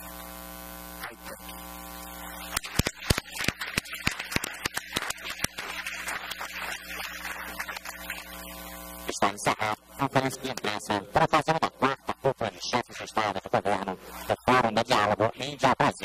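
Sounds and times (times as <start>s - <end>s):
electrical mains hum: 0.0s - 16.0s
scattered applause: 2.5s - 8.8s.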